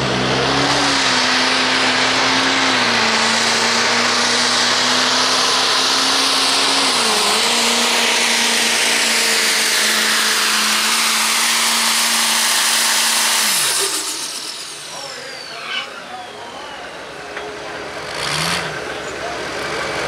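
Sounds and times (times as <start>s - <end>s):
diesel engine at high revs: 0.0s - 20.0s.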